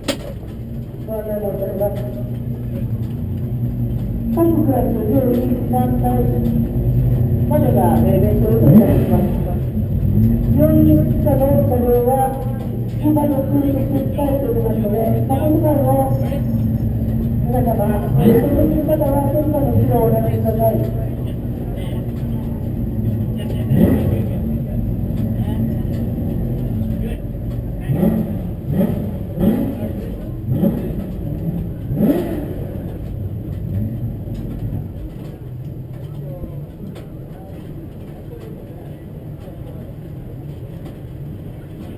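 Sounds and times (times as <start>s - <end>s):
engine throttle blips: 0.0s - 41.9s
race car engine idling: 0.0s - 41.9s.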